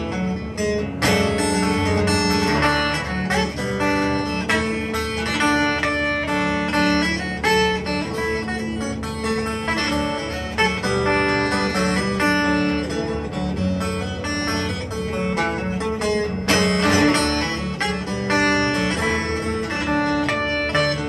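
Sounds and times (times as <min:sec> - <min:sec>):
acoustic guitar melody: 0:00.0 - 0:21.0.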